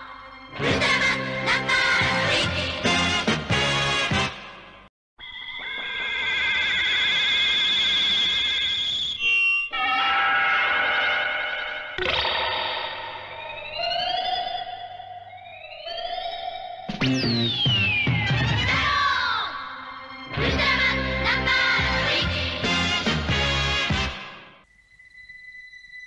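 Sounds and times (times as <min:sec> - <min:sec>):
warbling electronic tones: 0:09.6 - 0:18.7
rising electronic sweeps: 0:09.7 - 0:18.8
steady low electronic tone: 0:10.9 - 0:18.0.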